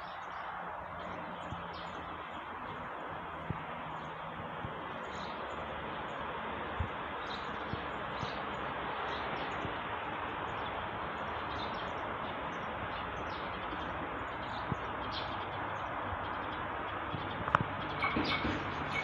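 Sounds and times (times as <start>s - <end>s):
birds chirping: 0.0s - 19.0s
train rumbling on track: 0.5s - 19.0s.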